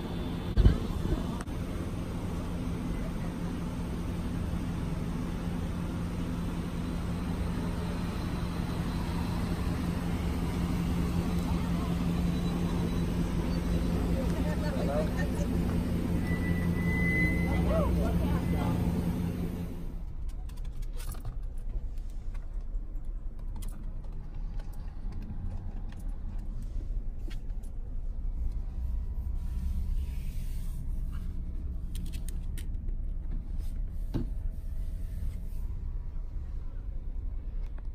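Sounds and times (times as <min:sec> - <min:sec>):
car engines idling: 0:00.0 - 0:37.9
hum inside moving car: 0:00.0 - 0:37.9
faint voices: 0:07.1 - 0:19.7
brief high tone: 0:16.1 - 0:19.3.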